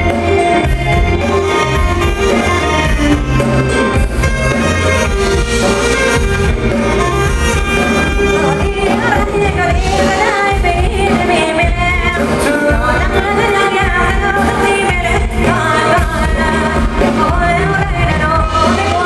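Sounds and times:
person singing: 0.0 - 4.9, 7.5 - 19.0
band playing dance music: 0.0 - 19.0.

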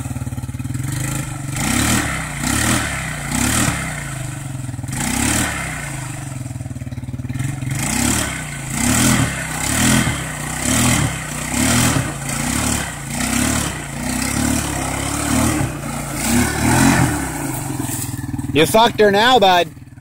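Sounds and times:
atv engine revving: 0.0 - 20.0.

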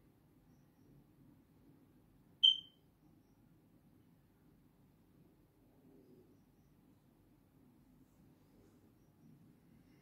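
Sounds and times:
faint low room hum: 0.0 - 10.0
short high electronic beep: 2.4 - 2.7.

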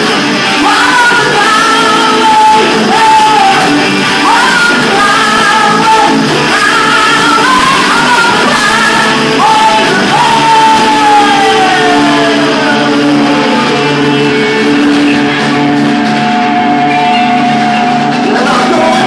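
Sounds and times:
people singing: 0.0 - 15.7, 18.1 - 19.0
drums: 0.0 - 19.0
electric guitars: 0.0 - 19.0.

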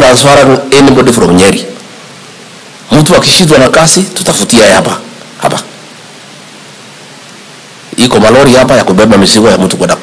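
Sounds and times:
man speaking into a microphone: 0.0 - 1.8, 2.9 - 5.8, 7.9 - 10.0
steady hiss: 0.0 - 10.0.

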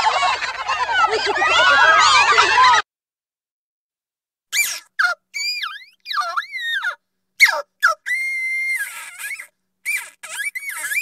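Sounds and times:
cartoon creature squeaky chirps: 4.5 - 11.0.

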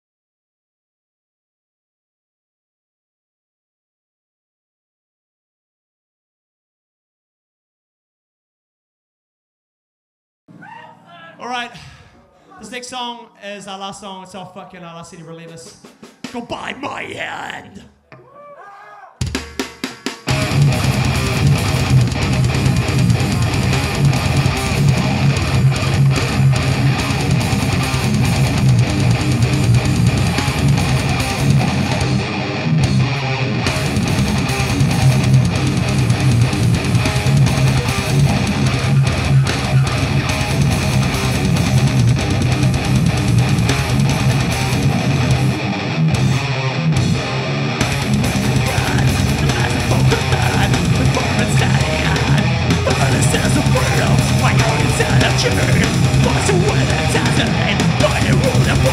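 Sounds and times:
fast drum kit playing: 15.1 - 17.6, 19.2 - 32.2, 33.7 - 45.6, 47.0 - 58.9
distorted electric guitars: 19.2 - 58.9.

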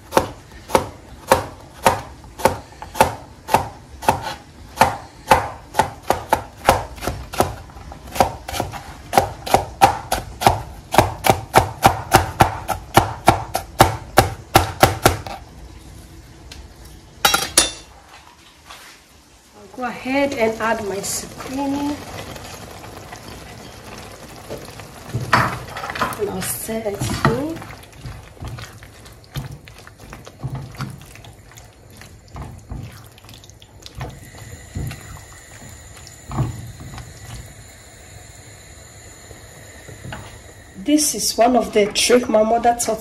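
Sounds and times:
knife chopping on plastic board: 0.1 - 15.3.

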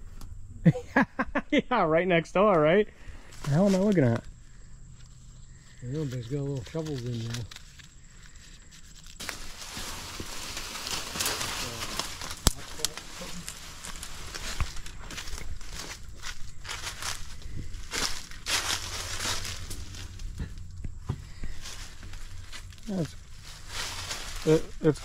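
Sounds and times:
rustling through weeds and leaves: 3.0 - 25.0
twig snaps: 10.8 - 14.9.

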